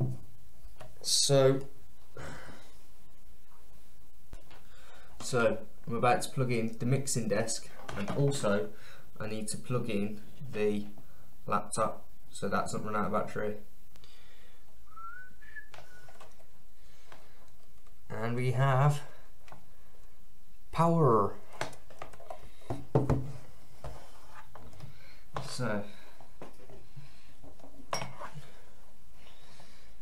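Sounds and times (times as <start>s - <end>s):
man whistling softly: 14.8s - 16.2s.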